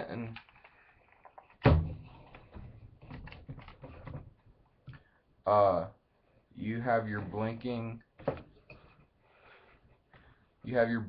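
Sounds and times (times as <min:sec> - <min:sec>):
objects knocking and rustling: 0:00.4 - 0:05.0, 0:08.2 - 0:09.0.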